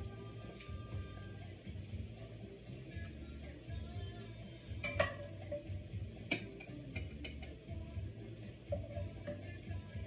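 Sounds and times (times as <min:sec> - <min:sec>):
quiet music with repeating bass: 0:00.0 - 0:10.0.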